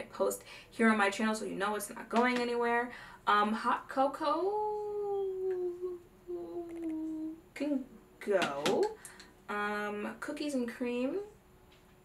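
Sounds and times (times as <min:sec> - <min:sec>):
woman humming: 0:04.5 - 0:07.4.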